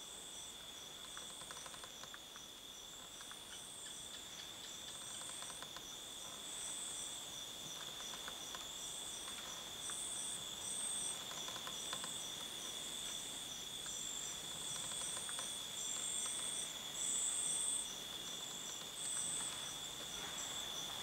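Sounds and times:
insect chirping calls: 0.2 - 21.0.

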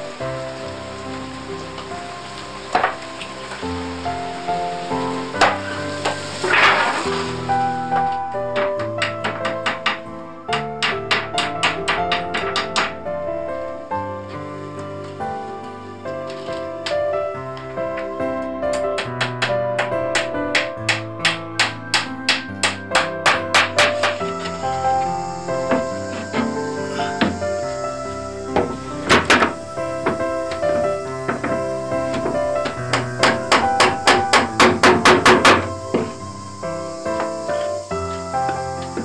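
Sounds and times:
background music: 0.0 - 39.0
hammer driving nails into wood: 8.6 - 12.9, 19.2 - 24.2, 32.9 - 35.6.

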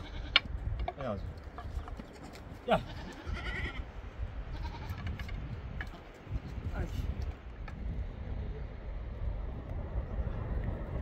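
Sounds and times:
goats bleating: 0.0 - 0.4, 2.6 - 3.9, 4.5 - 5.0
steady low rumble: 2.9 - 11.0.

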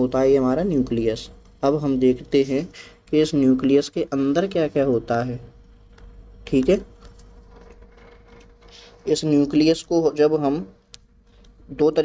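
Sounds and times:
faint steady hum: 0.0 - 12.0
low background hiss: 0.0 - 12.0.

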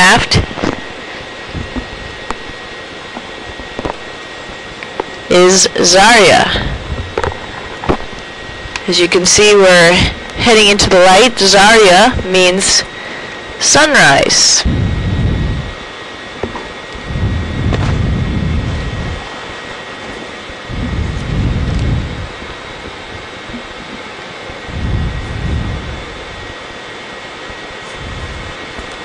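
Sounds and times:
ventilation fans hissing: 0.0 - 29.0
microphone buffeting rumbles: 0.2 - 2.7, 6.4 - 8.9, 14.6 - 26.7, 27.5 - 29.0.

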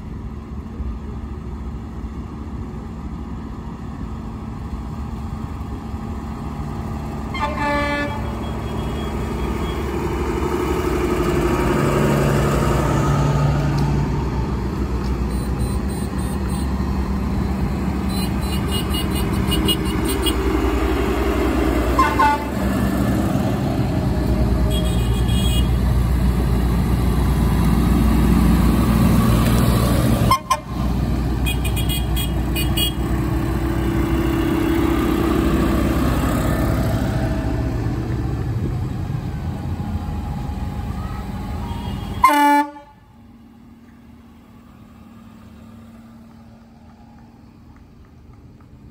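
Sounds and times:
tractor engines rumbling: 0.0 - 48.9.

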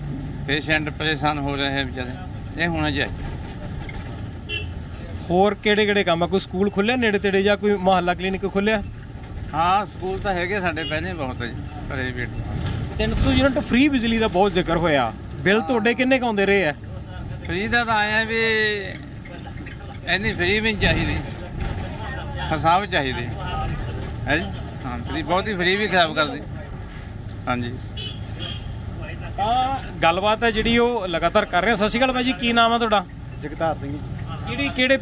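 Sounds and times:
bus engine rumble: 0.0 - 35.0
people talking: 13.0 - 26.7, 29.0 - 35.0
man speaking: 22.1 - 26.7, 29.0 - 35.0.

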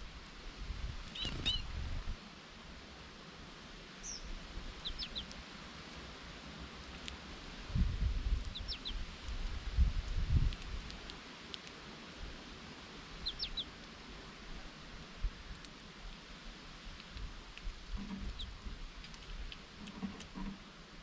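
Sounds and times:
wind gusts on microphone: 0.0 - 2.2, 7.6 - 11.0
songbirds chirping: 1.1 - 1.8, 3.9 - 6.1, 8.4 - 9.1, 13.0 - 16.2, 17.0 - 21.0.

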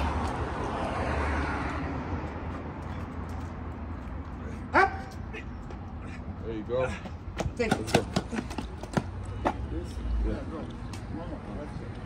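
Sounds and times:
passing traffic: 0.0 - 12.0.

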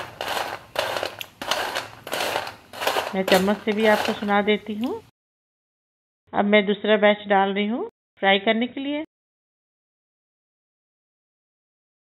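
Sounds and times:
fried chickpeas rattling in steel strainer: 0.0 - 4.6.

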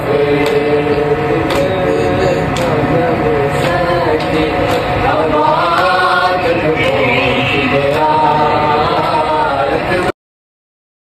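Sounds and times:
group of voices chanting: 0.0 - 10.2.

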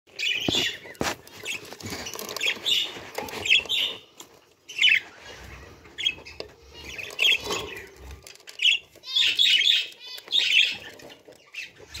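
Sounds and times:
parakeet squawking and chirping: 0.1 - 12.0.

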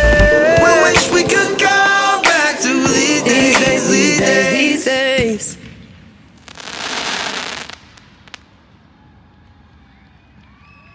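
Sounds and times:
fireworks crackling hiss: 1.7 - 8.8.

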